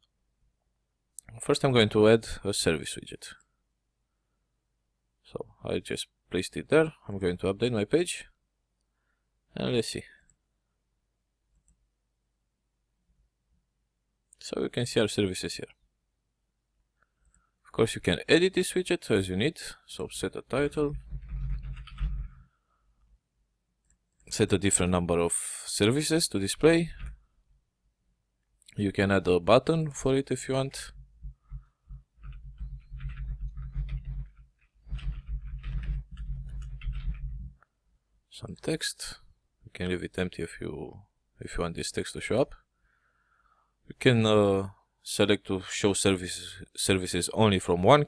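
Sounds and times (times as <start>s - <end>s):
computer mouse clicks: 31.2s - 37.7s.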